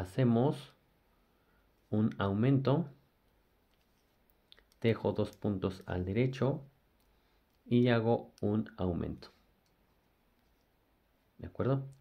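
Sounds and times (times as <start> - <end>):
man speaking: 0.0 - 0.8, 1.9 - 3.0, 4.8 - 6.7, 7.7 - 9.5, 11.4 - 12.0.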